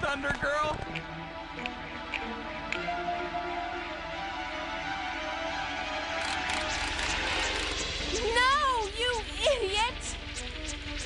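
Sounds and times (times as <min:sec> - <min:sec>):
cartoon music: 0:08.0 - 0:10.2.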